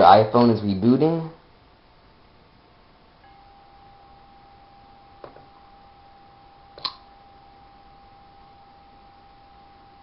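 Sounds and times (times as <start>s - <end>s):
low hiss: 0.0s - 10.0s
faint high steady tone: 1.7s - 10.0s.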